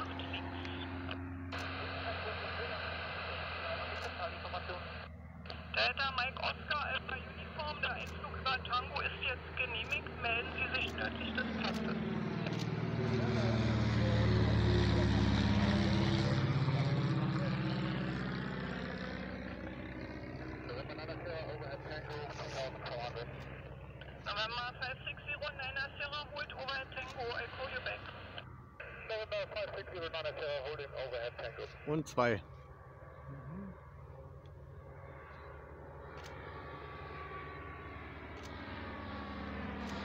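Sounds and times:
propeller aircraft engine drone: 0.0s - 40.0s.

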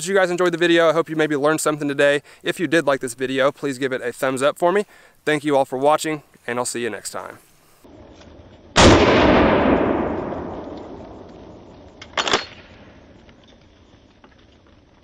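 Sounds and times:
shotgun shot with echo: 8.8s - 11.3s.

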